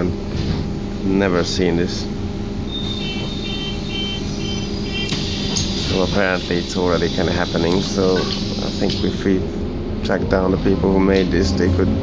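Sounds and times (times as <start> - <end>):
bus engine running: 0.0 - 12.0
high electronic beeps: 2.7 - 6.5.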